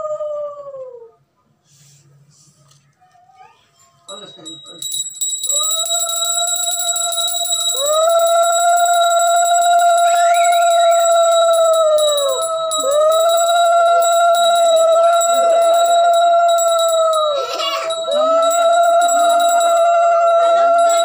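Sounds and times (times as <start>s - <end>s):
hand bell ringing: 4.1s - 21.0s.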